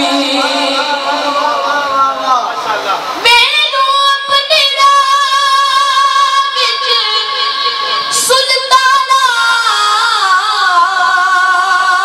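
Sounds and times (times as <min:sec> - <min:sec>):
boy singing devotional song: 0:00.0 - 0:12.0.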